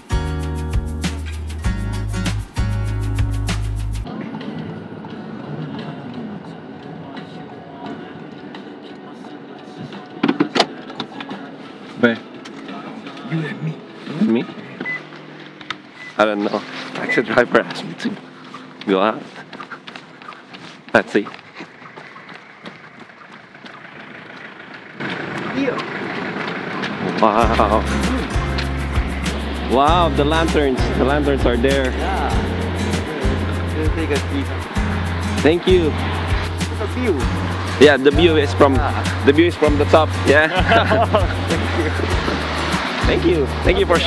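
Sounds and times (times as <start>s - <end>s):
car cabin and road noise: 4.0s - 44.0s
low voices: 27.0s - 34.8s, 35.4s - 44.0s
loud spoken words: 43.0s - 44.0s.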